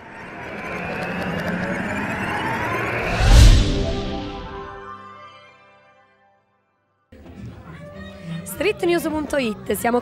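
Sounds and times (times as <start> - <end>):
rising whoosh effect: 0.0 - 5.2.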